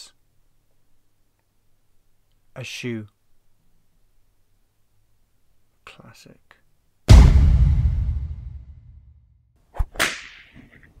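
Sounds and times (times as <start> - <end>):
sharp crack: 7.1 - 9.0, 9.9 - 10.5.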